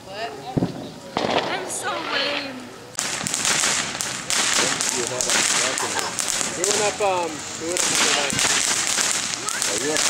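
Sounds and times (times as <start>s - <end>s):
firework fountain hissing: 0.1s - 10.0s.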